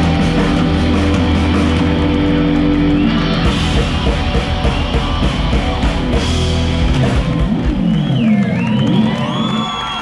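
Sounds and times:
crowd cheering and whooping: 7.0s - 10.0s.

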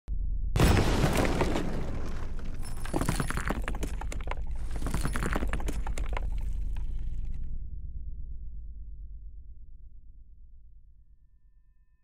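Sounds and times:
rubble clattering down: 0.6s - 7.4s.

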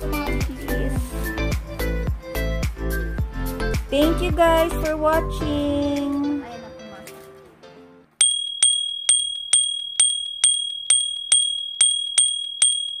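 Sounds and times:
music: 0.0s - 8.2s
notification bell ringing: 8.2s - 13.0s.

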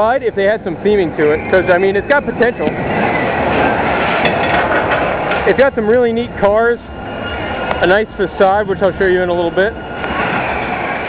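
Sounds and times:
roller coaster rumbling on rails: 0.0s - 11.0s.

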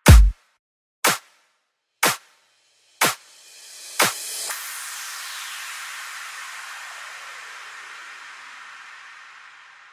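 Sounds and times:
kick drum hit: 0.0s - 0.4s
white noise sweep: 3.6s - 9.9s.

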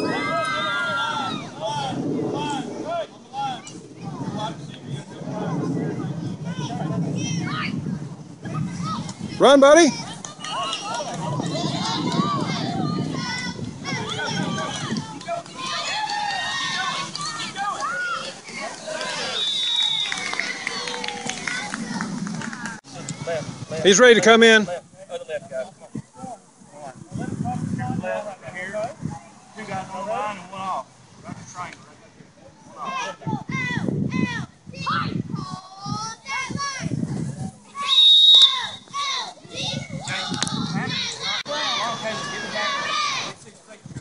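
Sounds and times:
children shouting: 0.0s - 1.9s, 10.0s - 22.8s, 37.7s - 43.4s
loud whistle blast: 19.2s - 20.3s, 37.9s - 38.9s.

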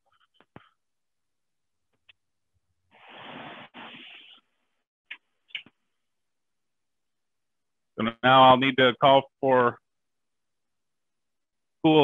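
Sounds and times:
rustling scrape: 2.9s - 4.4s.

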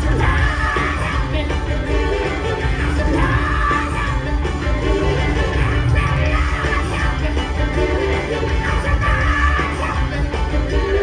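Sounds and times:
drums: 0.0s - 11.0s
electric guitars: 0.0s - 11.0s
lead vocal singing: 0.0s - 11.0s
live band playing: 0.0s - 11.0s.

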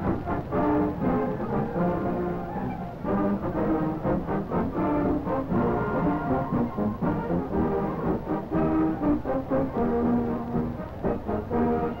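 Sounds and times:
marching band brass: 0.0s - 12.0s.

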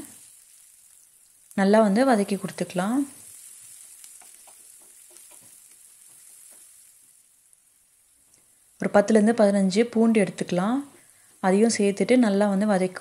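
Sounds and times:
onions sizzling in a pan: 0.0s - 13.0s
wooden spatula stirring: 2.2s - 7.3s.

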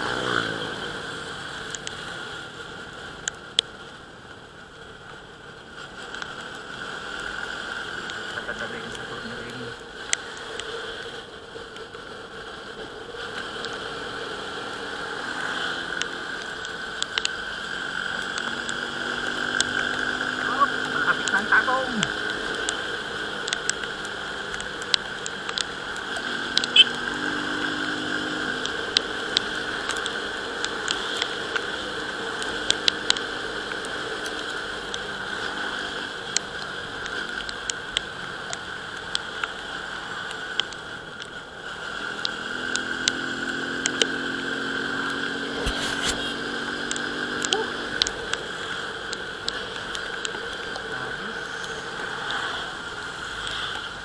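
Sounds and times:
wet road noise: 0.0s - 54.0s
wind: 0.0s - 54.0s
raindrops ticking on camera: 1.1s - 54.0s.

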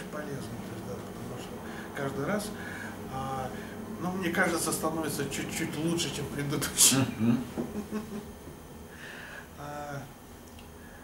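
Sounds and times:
man chuckling: 7.1s - 8.4s.

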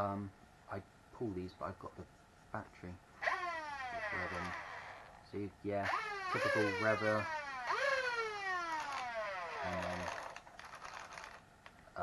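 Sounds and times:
flywheel motors whining down: 3.2s - 5.2s, 5.9s - 11.4s.

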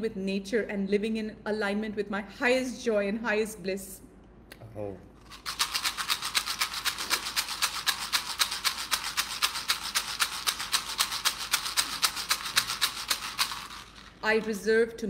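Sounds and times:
handheld rattle shaken: 5.2s - 14.7s.

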